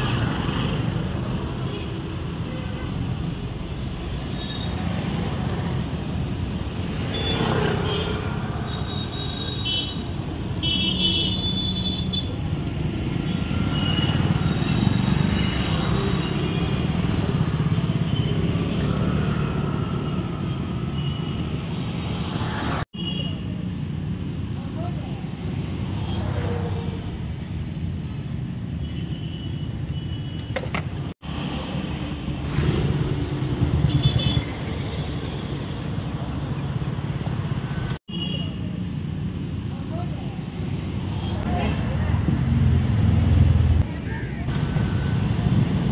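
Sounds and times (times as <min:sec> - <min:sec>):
passing traffic: 0:00.0 - 0:45.9.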